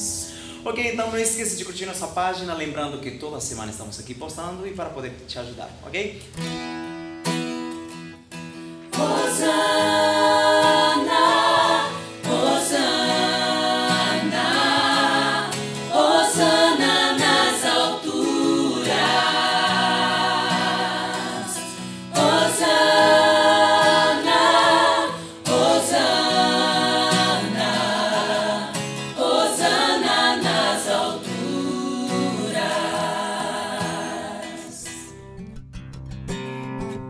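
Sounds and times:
acoustic guitar: 0.0 - 3.2, 5.7 - 37.0
vocal ensemble singing in harmony: 8.7 - 35.2.

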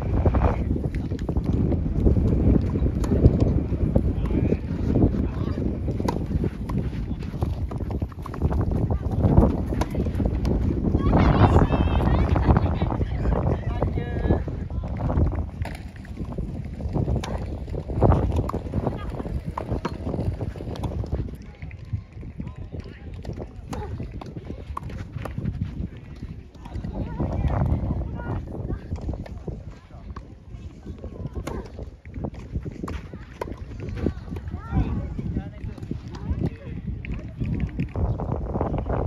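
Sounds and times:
wind rumble on microphone: 0.0 - 39.0
ball bouncing: 0.8 - 12.6, 15.5 - 28.0
footsteps on court: 0.8 - 12.9, 13.5 - 38.2
rackets striking tennis ball: 0.9 - 11.5, 16.9 - 21.2, 31.3 - 34.5.

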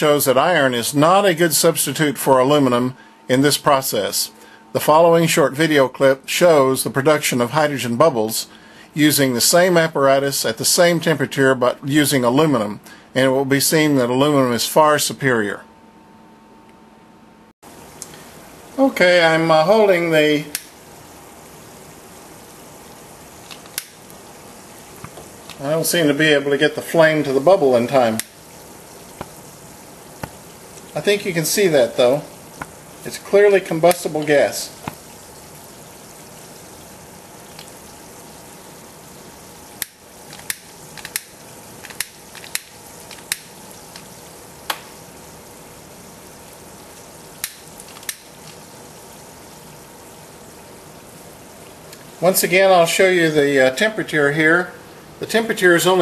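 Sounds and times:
fizzing and bubbling: 17.7 - 52.6
sharp clicks: 20.5 - 20.7, 39.8 - 44.1.

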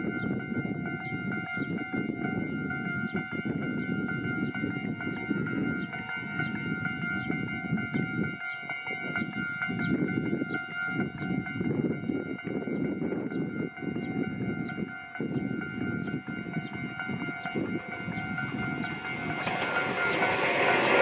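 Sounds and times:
pulsing high ringing: 0.0 - 21.0
train running rumble: 0.0 - 21.0.

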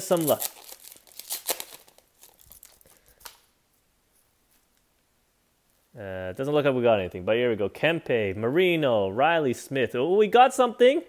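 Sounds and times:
foil wrapper tearing and crinkling: 0.0 - 3.5.

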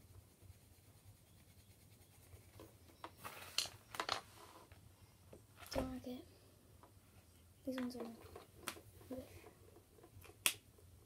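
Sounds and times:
pencils scratching on paper: 0.0 - 3.6.

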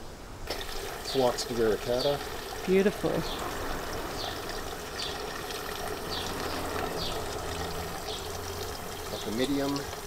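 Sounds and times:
running water trickling: 0.4 - 10.0.

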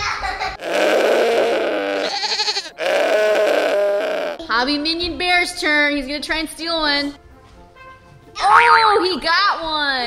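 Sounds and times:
goat bleating: 0.6 - 4.5.

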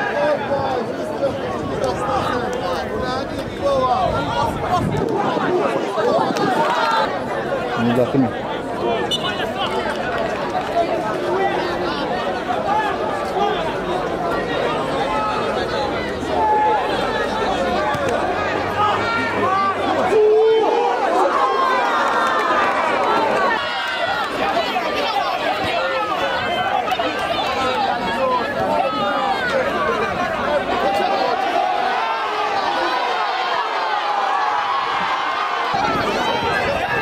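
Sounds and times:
crowd chattering and calling out: 0.0 - 37.0
loud shout: 11.2 - 37.0.

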